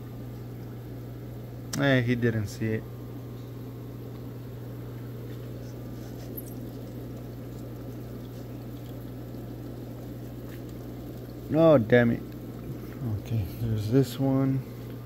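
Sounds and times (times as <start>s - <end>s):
water bubbling and splashing: 6.6s - 11.5s.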